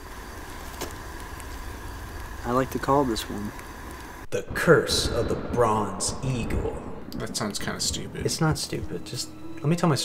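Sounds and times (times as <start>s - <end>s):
low background rumble: 0.0s - 10.0s
people talking: 2.4s - 3.6s, 4.3s - 10.0s.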